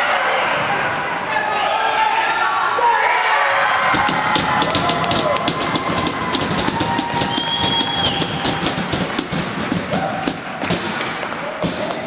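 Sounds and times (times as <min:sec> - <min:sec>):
sharp taps and knocks: 0:03.9 - 0:12.0.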